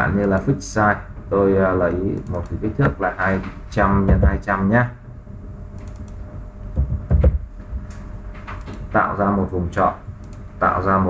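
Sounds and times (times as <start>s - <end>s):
low thumps: 2.8s - 8.6s
keyboard and mouse clicks: 5.8s - 6.2s, 7.9s - 8.9s, 10.2s - 10.4s.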